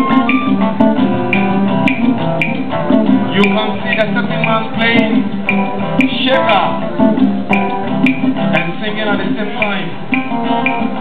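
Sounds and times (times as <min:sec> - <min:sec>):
strummed acoustic guitars: 0:00.0 - 0:11.0.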